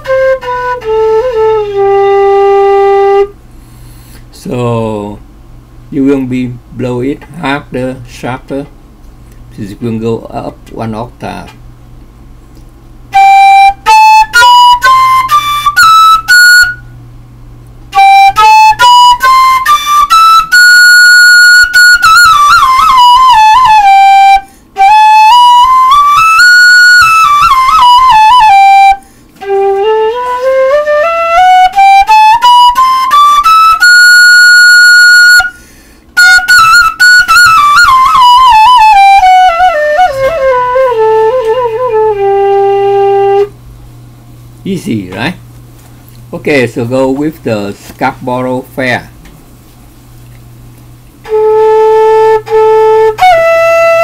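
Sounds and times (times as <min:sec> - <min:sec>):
flute playing scales: 0:00.0 - 0:03.4, 0:13.1 - 0:17.0, 0:17.9 - 0:43.6, 0:51.2 - 0:54.0.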